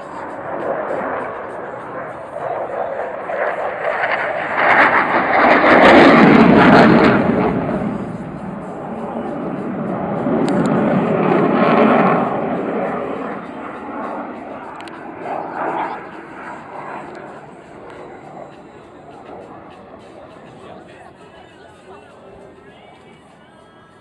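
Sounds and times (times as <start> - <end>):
jet flying past overhead: 0.0 - 24.0.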